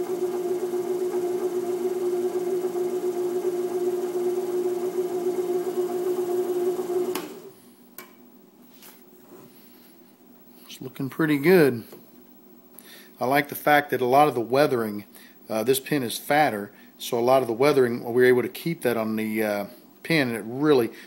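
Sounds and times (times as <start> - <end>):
wood lathe motor humming: 0.0 - 7.4.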